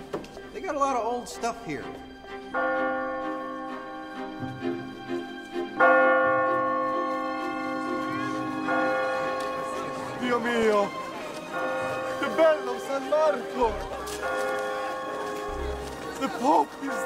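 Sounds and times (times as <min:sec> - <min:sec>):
large church bell tolling: 0:02.5 - 0:17.0.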